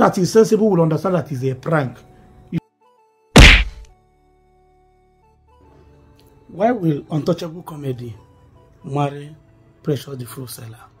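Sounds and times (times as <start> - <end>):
loud thud sound effect: 3.4 - 3.9.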